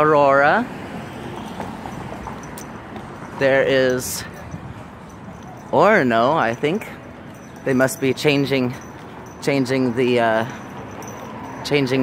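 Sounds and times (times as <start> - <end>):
outdoor street noise: 0.0 - 12.0
footsteps on concrete: 1.3 - 5.6.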